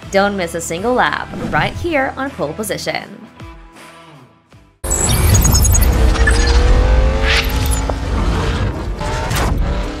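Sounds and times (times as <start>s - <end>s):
race car engine rumble: 4.9s - 10.0s.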